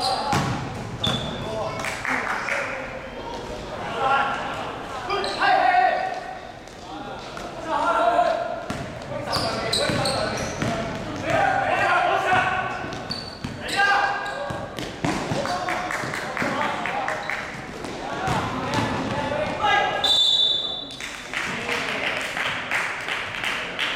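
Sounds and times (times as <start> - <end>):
basketball bouncing on court floor: 0.3 - 1.3, 8.7 - 13.6, 14.4 - 15.6, 17.8 - 19.6
players and spectators calling out: 1.1 - 6.6.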